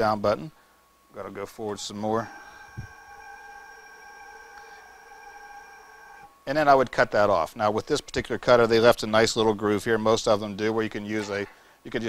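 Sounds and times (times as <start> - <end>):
motor whine: 0.9 - 8.8.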